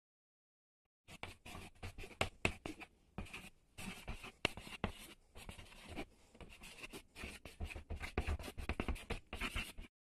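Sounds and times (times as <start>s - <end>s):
ballpoint pen scratching on paper: 1.1s - 9.9s.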